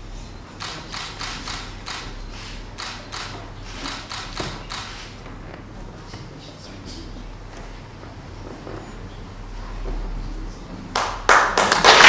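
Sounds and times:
people clapping: 10.9s - 12.0s.

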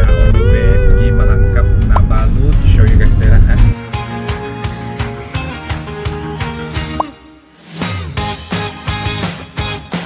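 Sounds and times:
heavy low rumble: 0.0s - 3.8s
man talking: 0.0s - 3.8s
background music: 0.0s - 10.0s.

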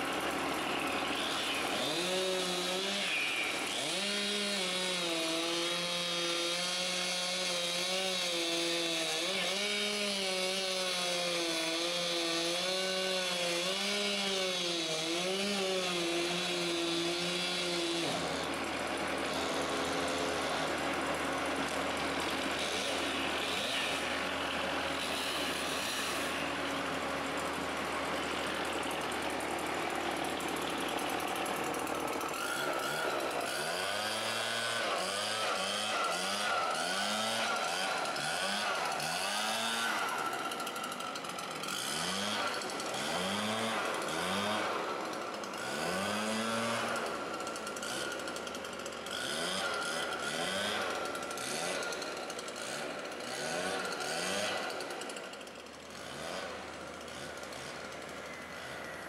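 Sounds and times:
chainsaw revving: 0.0s - 59.0s
heavy machinery hum: 18.0s - 34.2s.

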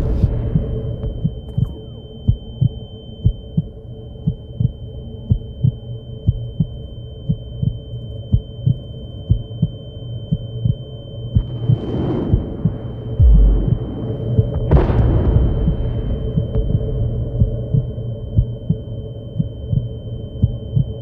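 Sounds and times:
heartbeat double thump: 0.0s - 3.7s, 11.4s - 20.9s
low hum: 0.0s - 5.6s, 6.3s - 21.0s
high-pitched ringing tone: 0.2s - 11.8s.

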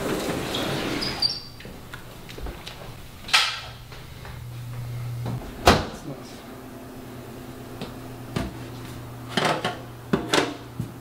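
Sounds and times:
sliding glass door in track: 0.0s - 1.6s
cabinet door shutting: 5.5s - 6.0s.

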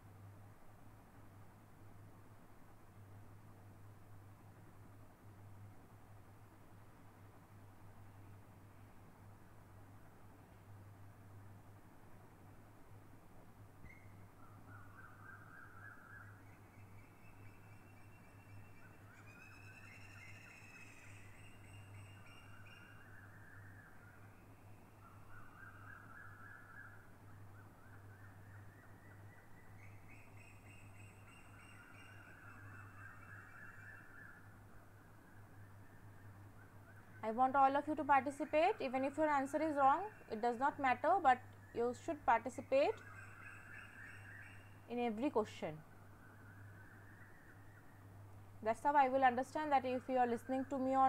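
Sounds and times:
faint animal calls: 42.6s - 45.0s.

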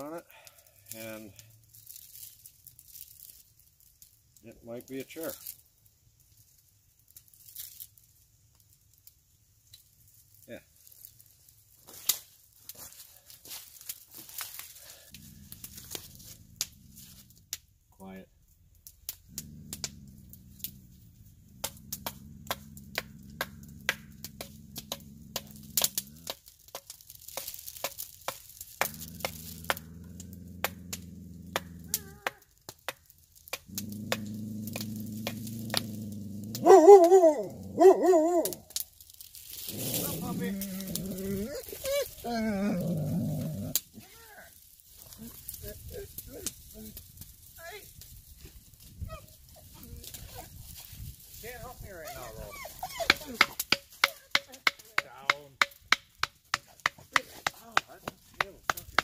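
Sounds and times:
blade clicking and scraping wood: 21.5s - 38.8s, 52.3s - 59.0s
wavering howl-like call: 36.6s - 38.6s.

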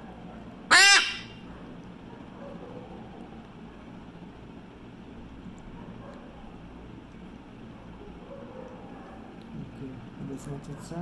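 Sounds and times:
macaw squawking: 0.7s - 1.4s.

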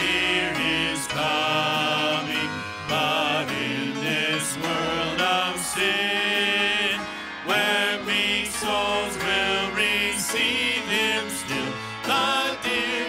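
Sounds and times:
instrumental accompaniment: 0.0s - 13.0s
worship team singing a hymn: 0.0s - 13.0s.

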